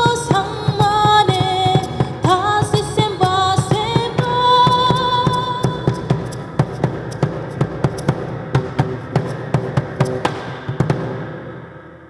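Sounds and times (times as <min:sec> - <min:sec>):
percussion beating quick rhythm: 0:00.0 - 0:11.5.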